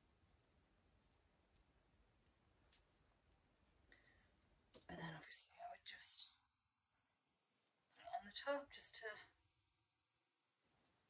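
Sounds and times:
woman whispering: 4.9 - 6.4, 8.0 - 9.4.

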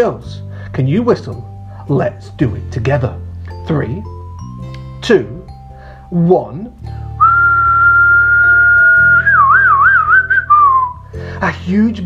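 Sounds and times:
quiet background music: 0.0 - 12.0
person whistling: 7.2 - 11.1.

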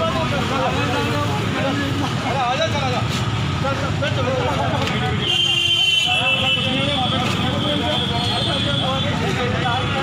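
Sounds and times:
people talking: 0.0 - 10.0
street traffic noise: 0.0 - 10.0.

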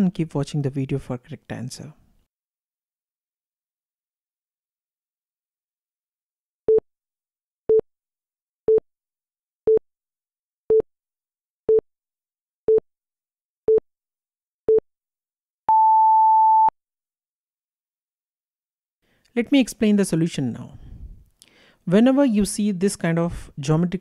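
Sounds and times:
long high beep: 15.7 - 16.7.

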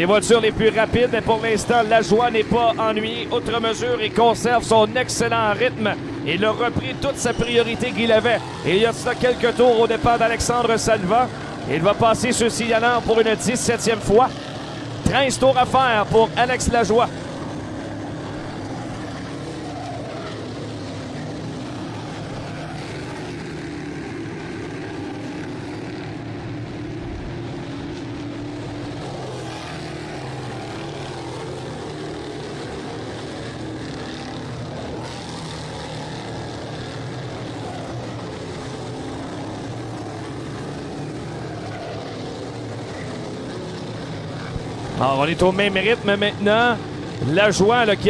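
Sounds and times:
race car engines droning: 0.0 - 48.0.

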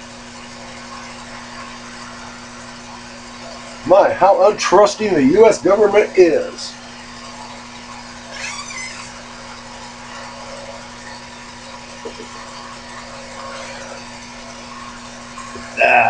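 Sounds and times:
small electric motor humming: 0.0 - 16.0.

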